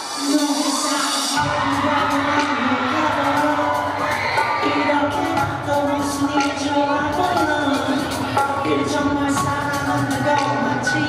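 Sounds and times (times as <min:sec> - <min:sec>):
audience cheering and screaming: 0:00.0 - 0:11.0
loud pop concert music: 0:00.0 - 0:11.0.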